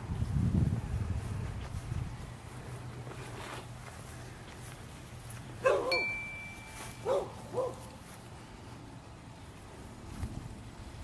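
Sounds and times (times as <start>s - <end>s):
thin high ringing tone: 5.9s - 7.2s.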